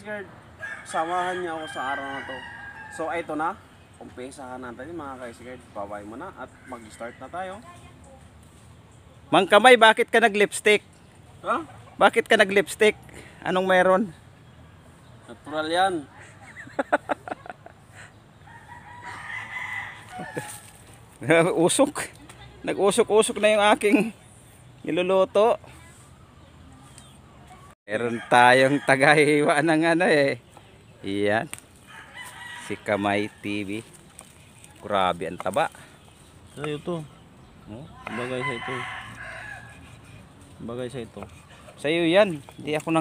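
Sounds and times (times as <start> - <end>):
rooster crowing: 0.6 - 3.4, 6.4 - 7.6, 18.4 - 20.8, 28.1 - 29.5, 31.9 - 33.6, 38.0 - 40.2.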